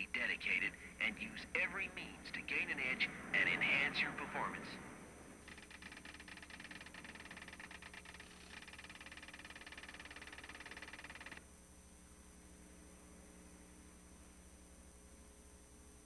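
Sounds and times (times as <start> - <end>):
faint tape hiss and hum: 0.0 - 16.0
rapid electronic typing ticks: 5.4 - 11.4.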